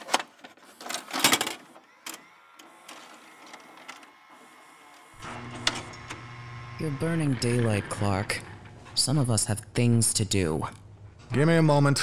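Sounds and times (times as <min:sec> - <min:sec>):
tape machine clicking and whirring: 0:00.0 - 0:09.3
low electrical hum: 0:04.8 - 0:12.0.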